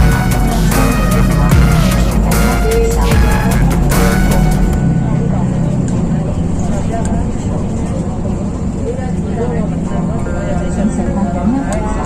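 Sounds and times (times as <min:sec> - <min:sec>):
background music: 0:00.0 - 0:05.8
indistinct voices: 0:00.0 - 0:12.0
traffic rumble: 0:00.0 - 0:12.0.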